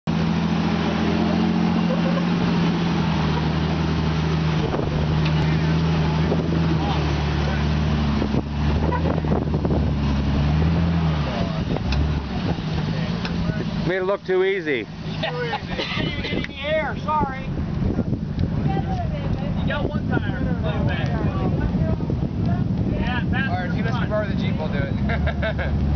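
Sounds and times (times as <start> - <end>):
off-road vehicle engine under load: 0.0 - 25.9.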